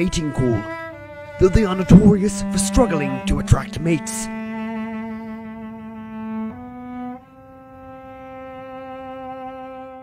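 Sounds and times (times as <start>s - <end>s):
cello bowed in long notes: 0.0s - 10.0s.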